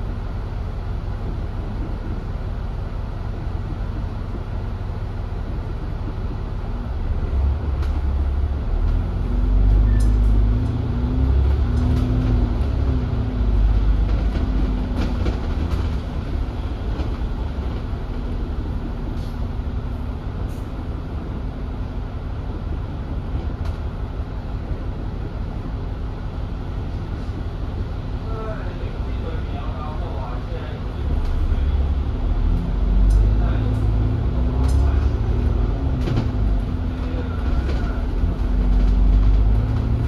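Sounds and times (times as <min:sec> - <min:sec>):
bus engine drone: 0:00.0 - 0:40.0.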